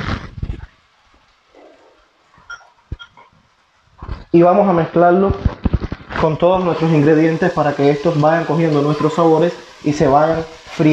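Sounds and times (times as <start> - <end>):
faint clinks: 2.4 - 3.2.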